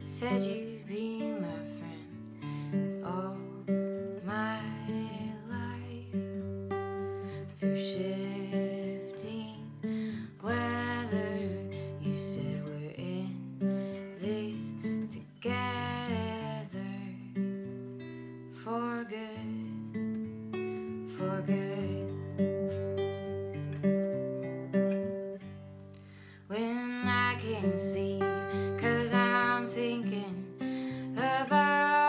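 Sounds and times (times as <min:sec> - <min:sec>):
woman singing: 0:00.0 - 0:17.7, 0:18.5 - 0:20.0, 0:20.9 - 0:23.3, 0:26.4 - 0:32.0
acoustic guitar strumming chords: 0:19.7 - 0:32.0.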